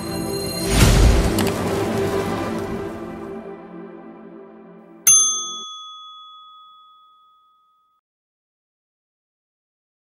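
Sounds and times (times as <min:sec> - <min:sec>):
bright bell ding: 0:05.1 - 0:08.0.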